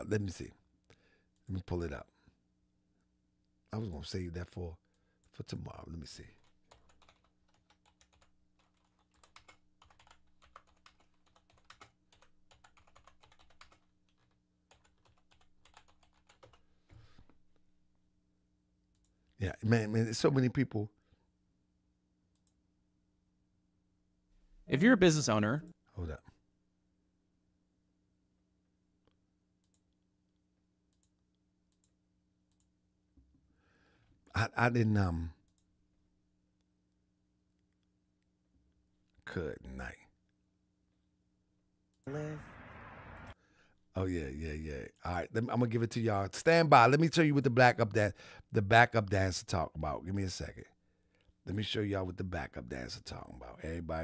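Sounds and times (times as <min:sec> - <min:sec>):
faint low electrical hum: 0:00.0 - 0:54.0
typing on computer keyboard: 0:06.4 - 0:16.6
computer mouse clicks: 0:22.3 - 0:22.6, 0:29.0 - 0:29.9.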